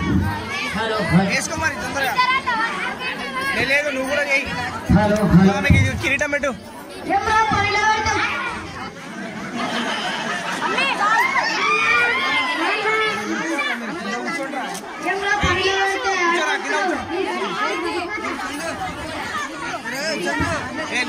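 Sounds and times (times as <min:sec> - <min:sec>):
child speaking over loudspeaker: 0:00.0 - 0:03.7, 0:06.9 - 0:08.9, 0:15.0 - 0:20.9
crowd chatter: 0:00.0 - 0:21.0.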